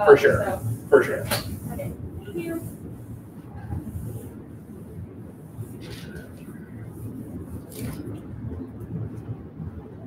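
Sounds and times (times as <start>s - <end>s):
low uneven room rumble: 0.0s - 10.0s.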